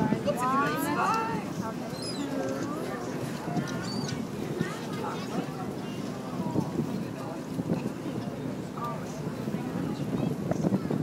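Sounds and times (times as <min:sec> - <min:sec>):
people talking: 0:00.0 - 0:11.0
wind buffeting microphone: 0:00.0 - 0:11.0.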